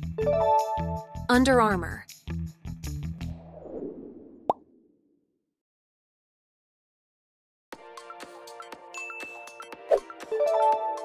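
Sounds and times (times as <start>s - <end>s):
background music: 0.0s - 3.4s, 7.8s - 11.0s.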